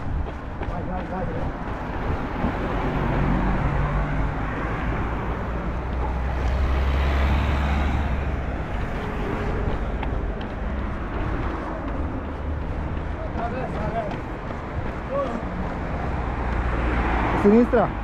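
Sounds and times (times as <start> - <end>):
wind rumbling on microphone: 0.0 - 17.3
road traffic noise: 0.0 - 18.0.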